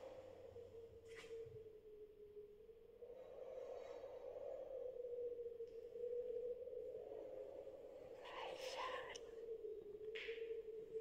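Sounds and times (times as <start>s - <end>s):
whispered voice: 8.2s - 9.2s.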